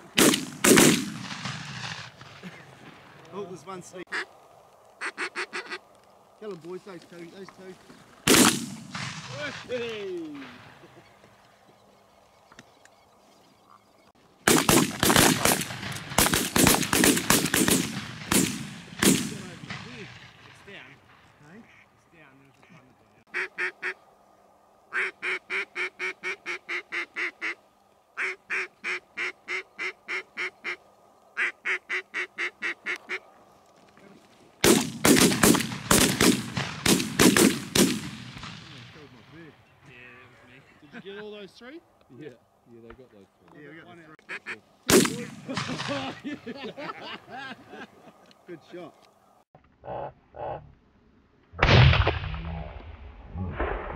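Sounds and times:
shotgun fire with echo: 0.2s - 2.0s, 8.3s - 9.4s, 14.5s - 20.1s, 34.6s - 38.9s, 44.9s - 46.0s
duck quacks: 5.0s - 5.8s, 21.6s - 21.9s, 22.6s - 24.0s, 24.9s - 27.6s, 28.2s - 30.8s, 31.4s - 33.2s, 44.2s - 44.6s.

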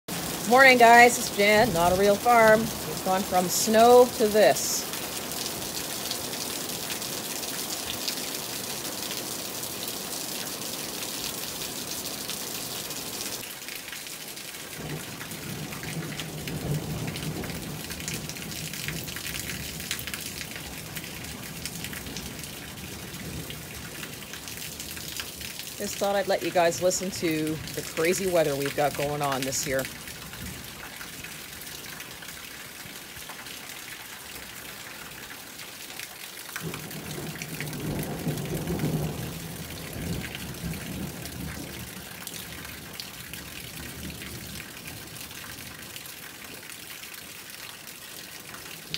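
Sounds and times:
distant thunder rumble: 0.1s - 4.9s, 14.8s - 19.9s, 36.6s - 42.0s
steady rain falling: 0.1s - 48.9s
water streaming off roof: 0.1s - 48.9s.

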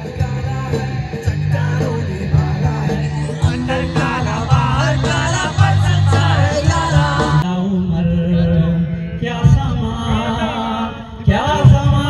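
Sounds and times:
backing beat: 0.0s - 7.6s
man singing into a microphone: 0.0s - 12.0s.

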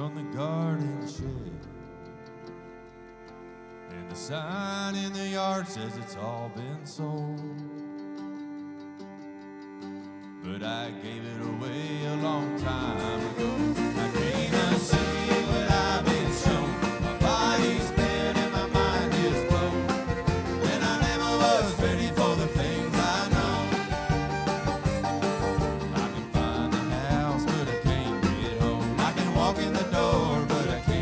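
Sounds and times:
bluegrass band playing: 0.0s - 31.0s.

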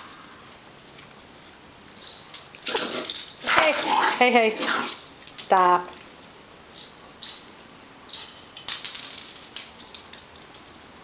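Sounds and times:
small dogs snarling and yapping: 2.6s - 5.1s.

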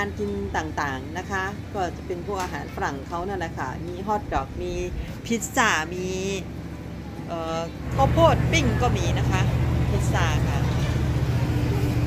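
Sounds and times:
woman speaking: 0.0s - 6.5s, 7.2s - 11.0s
low engine-like hum: 0.0s - 12.0s.

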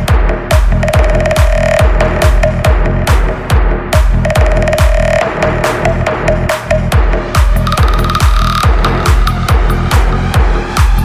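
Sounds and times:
dance music: 0.0s - 11.0s
heavy kick drum: 0.0s - 11.0s.

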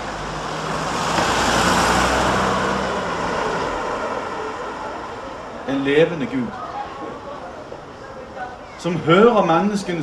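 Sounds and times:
vehicle driving past: 0.0s - 6.6s.

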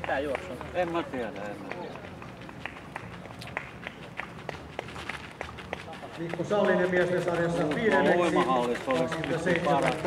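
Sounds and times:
running footsteps on gravel: 0.6s - 10.0s.

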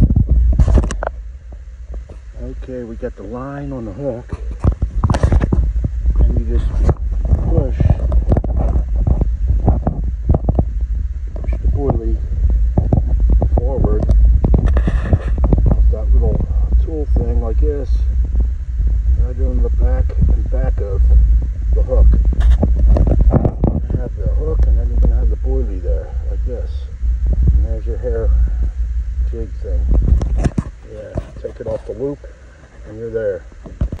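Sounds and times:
microphone handling knocks: 0.0s - 2.3s, 4.2s - 32.0s, 33.5s - 34.0s
wind rumble on microphone: 0.0s - 34.0s
man talking: 2.4s - 4.4s, 6.2s - 8.3s, 11.5s - 12.2s, 13.5s - 14.1s, 15.8s - 18.1s, 19.2s - 22.2s, 23.5s - 26.9s, 27.6s - 28.6s, 29.2s - 29.9s, 30.8s - 33.4s.

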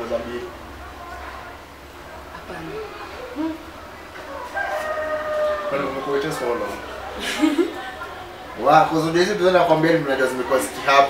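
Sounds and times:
faint voices: 0.0s - 11.0s
rooster crowing: 4.2s - 7.0s.

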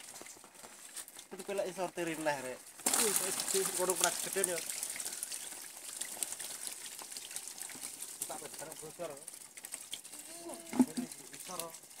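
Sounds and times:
fish splashing in shallow water: 0.0s - 1.4s, 2.6s - 12.0s.

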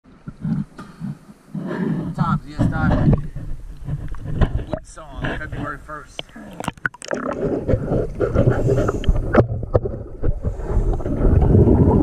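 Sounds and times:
exhaled bubbles rumbling: 0.1s - 12.0s
diver breathing underwater: 0.4s - 2.6s, 6.2s - 12.0s.

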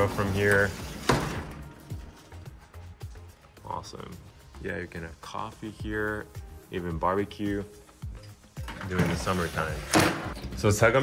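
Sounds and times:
quiet background music with bass: 0.0s - 11.0s.

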